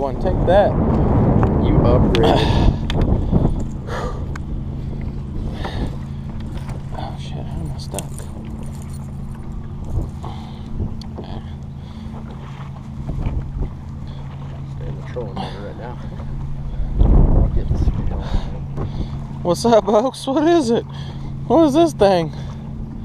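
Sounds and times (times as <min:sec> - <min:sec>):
boat motor humming: 0:00.0 - 0:23.0
light clicks and rattles: 0:02.2 - 0:14.5.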